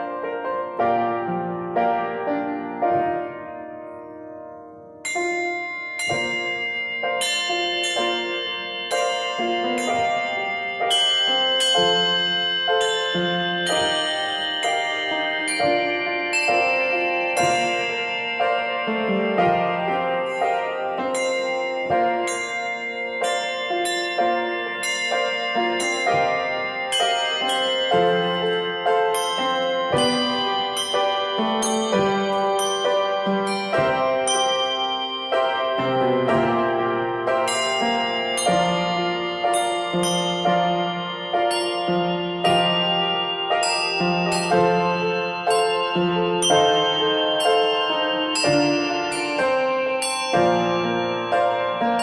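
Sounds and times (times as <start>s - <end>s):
handbells playing a hymn: 0.0s - 3.4s, 5.0s - 52.0s.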